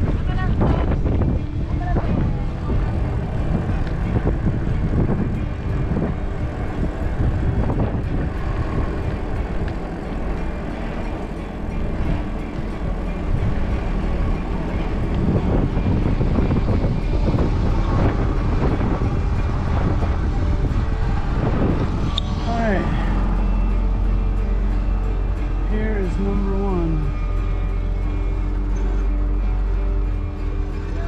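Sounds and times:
bicycle rolling on asphalt: 0.0 - 31.0
wind buffeting microphone: 0.0 - 31.0.

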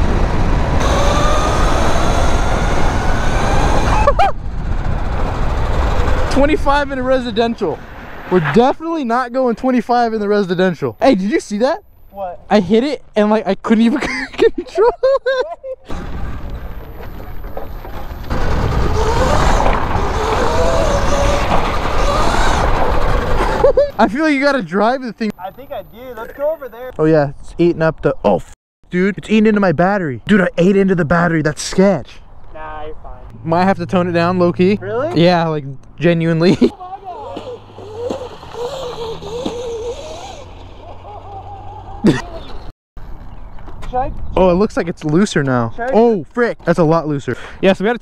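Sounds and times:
electric motor whining: 0.0 - 4.1, 15.9 - 23.7, 36.9 - 42.7
tyre noise: 15.9 - 24.2, 36.6 - 44.0
person yelling: 36.7 - 37.6.

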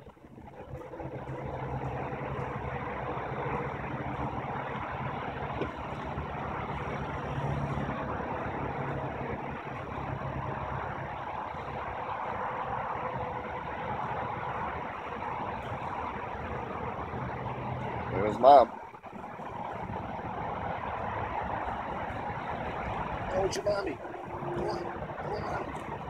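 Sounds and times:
vehicle engine idling: 0.0 - 26.0.

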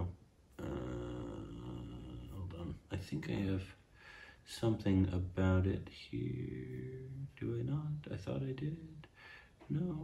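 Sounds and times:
man's drawn-out uhhh: 0.6 - 2.7.

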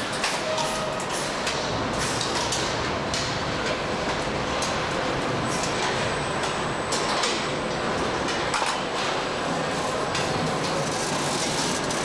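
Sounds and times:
factory mechanical din: 0.0 - 12.0.

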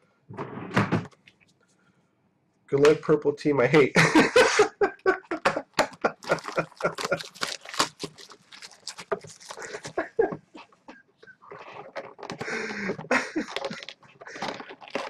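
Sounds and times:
plastic wrap crinkling: 5.2 - 15.0.

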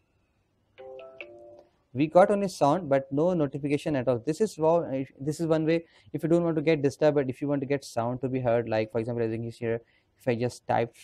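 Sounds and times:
smartphone notification chime: 0.8 - 1.6.

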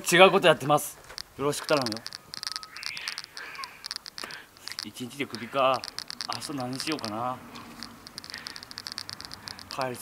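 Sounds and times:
small animal chirping: 1.1 - 10.0
soft breathy hiss: 2.7 - 5.8.

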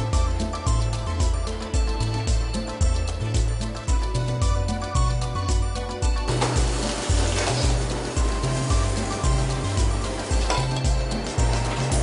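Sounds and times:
background music with bass beat: 0.0 - 12.0.

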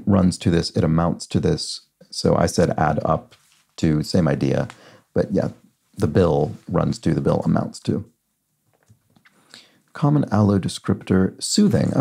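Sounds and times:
man speaking: 0.0 - 8.1, 9.9 - 12.0
soft intake of breath: 4.8 - 5.1.

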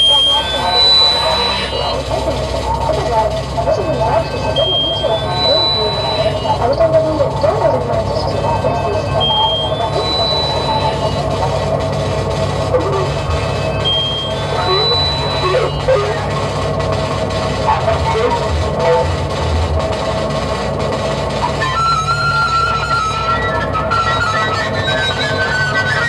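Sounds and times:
electronic music: 0.0 - 26.0
two-note high electronic tone: 0.0 - 26.0.

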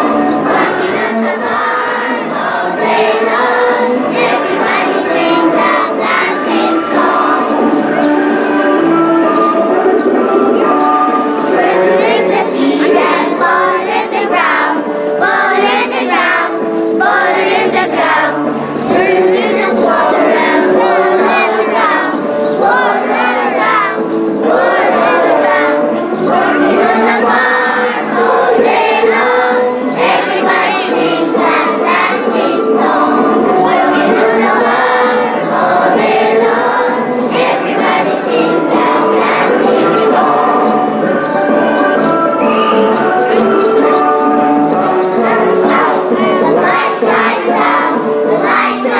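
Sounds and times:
girls singing together: 0.0 - 48.9.

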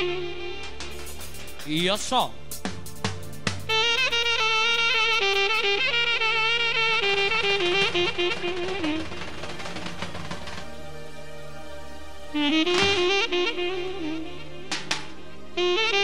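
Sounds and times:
saxophone melody: 0.0 - 16.0
held band chord: 0.6 - 10.7
sharp hits: 0.8 - 5.8.

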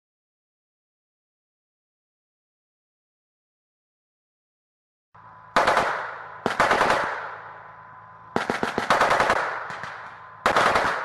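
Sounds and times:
low engine hum: 5.2 - 11.0
machine-gun fire with echo: 5.5 - 7.7, 8.3 - 11.0.

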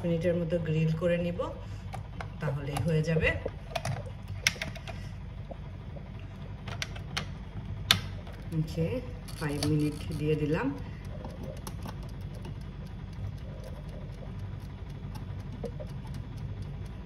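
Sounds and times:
timer dial clicking: 9.3 - 17.0.

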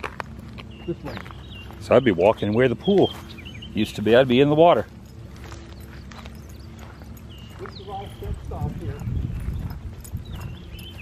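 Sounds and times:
footsteps on grass and concrete: 0.0 - 11.0.

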